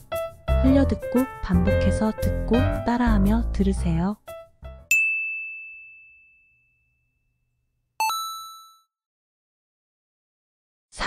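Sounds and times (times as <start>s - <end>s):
ding: 4.9s - 7.3s, 8.0s - 8.9s.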